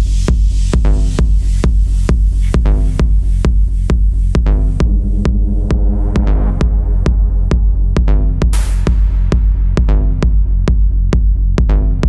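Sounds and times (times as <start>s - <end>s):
deep sustained bass: 0.1s - 11.2s
techno music: 0.2s - 10.2s
buzzy synth chord: 4.5s - 8.6s
sharp percussive hits: 4.6s - 9.8s.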